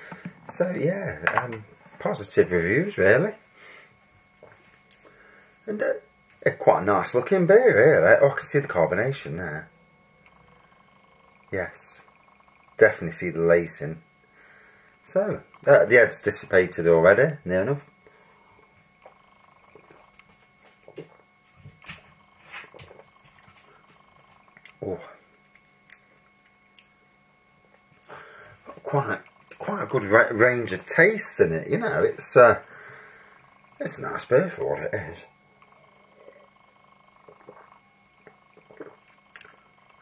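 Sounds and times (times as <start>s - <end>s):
breathing: 0.0s - 0.4s, 3.5s - 4.0s, 5.0s - 5.6s, 14.3s - 15.0s, 18.0s - 18.7s, 28.0s - 28.6s, 32.6s - 33.4s
faint steady hum: 0.0s - 40.0s
faint swallowing: 35.6s - 39.9s
soft gulping sips: 37.2s - 40.0s.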